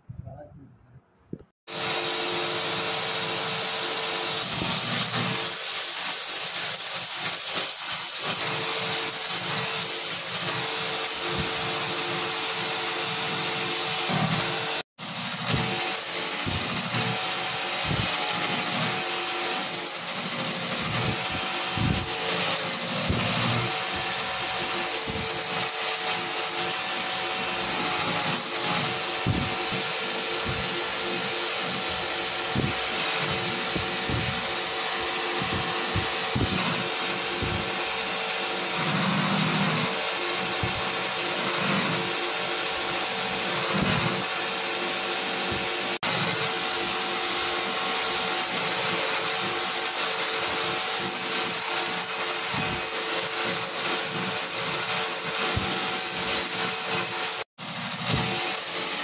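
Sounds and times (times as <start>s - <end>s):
belt grinder grinding metal: 1.7s - 59.0s.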